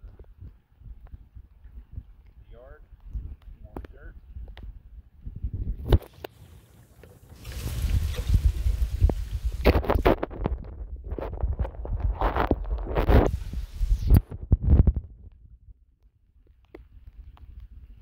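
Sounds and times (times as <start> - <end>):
wind buffeting microphone: 0.0 - 6.1, 7.4 - 15.8.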